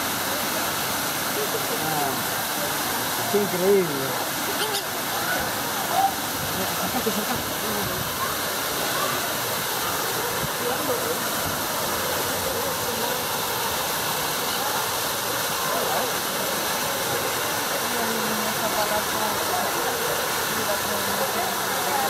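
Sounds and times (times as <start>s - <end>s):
falling water rushing: 0.0s - 22.0s
murmur of voices: 0.0s - 22.0s.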